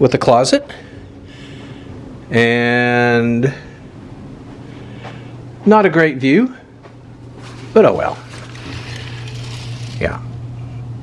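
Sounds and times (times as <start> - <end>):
low hum: 6.7 - 11.0.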